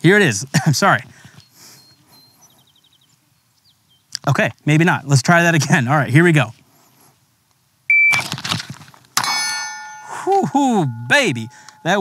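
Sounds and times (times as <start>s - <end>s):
shot timer beep: 7.9s - 8.3s
steel plate ringing: 9.2s - 12.0s.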